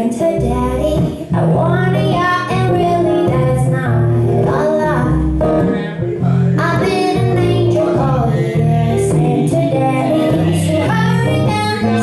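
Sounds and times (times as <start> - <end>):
woman singing: 0.0 - 5.3, 6.6 - 12.0
guitars strummed and picked: 0.0 - 12.0
low bass notes: 0.0 - 12.0.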